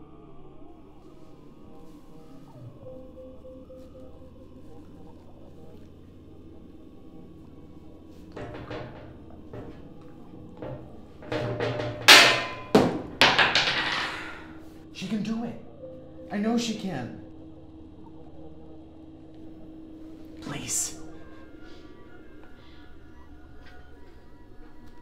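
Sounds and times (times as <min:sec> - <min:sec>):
quiet background music: 0:00.0 - 0:25.0
knocks: 0:08.3 - 0:14.6.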